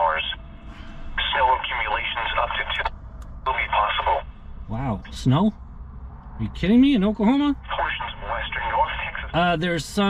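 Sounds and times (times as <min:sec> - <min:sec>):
voice over radio speaker: 0:00.0 - 0:00.4, 0:01.2 - 0:04.3, 0:07.2 - 0:09.6.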